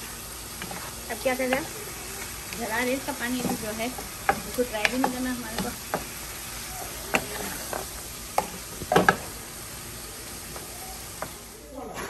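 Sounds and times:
wooden spatula scraping a pan: 0:00.0 - 0:09.3
beef sizzling in a skillet: 0:00.0 - 0:11.8.

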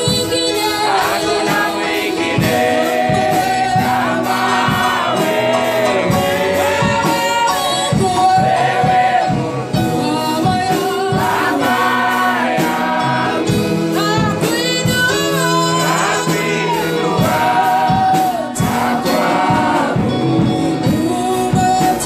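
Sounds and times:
choir singing gospel song: 0:00.0 - 0:22.0
instruments with steady beat: 0:00.0 - 0:22.0.

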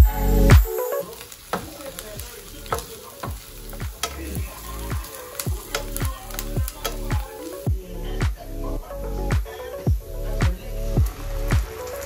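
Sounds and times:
onions sizzling in a frying pan: 0:00.0 - 0:08.8, 0:09.4 - 0:12.0
background music with drum beat: 0:00.0 - 0:12.0
spatula stirring in a pan: 0:00.8 - 0:07.7.

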